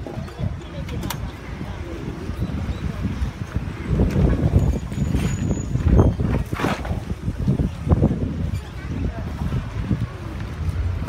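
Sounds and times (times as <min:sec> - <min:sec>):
passing vehicles: 0:00.0 - 0:11.0
wind buffeting microphone: 0:00.0 - 0:11.0.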